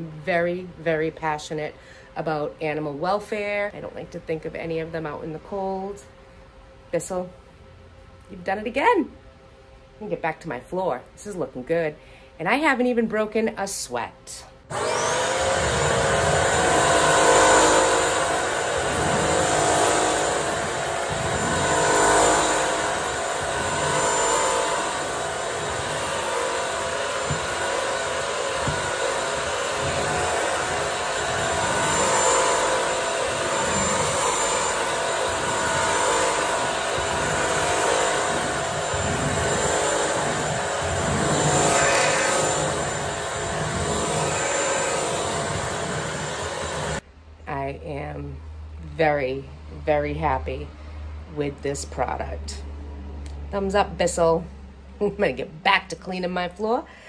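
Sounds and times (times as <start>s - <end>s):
floor cleaner motor whine: 14.7s - 47.0s.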